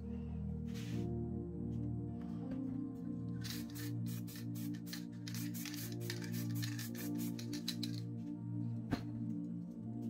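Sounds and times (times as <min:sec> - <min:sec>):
soft background music: 0:00.0 - 0:10.0
spray paint can hissing: 0:03.4 - 0:08.0.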